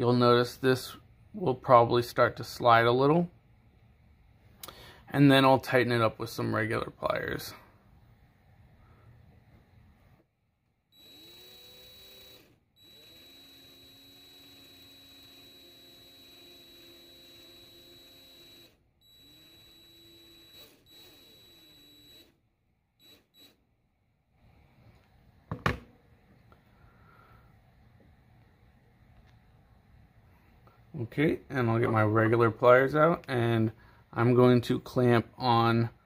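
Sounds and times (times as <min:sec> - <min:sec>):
cordless drill whining: 0:10.9 - 0:22.4, 0:23.0 - 0:23.6.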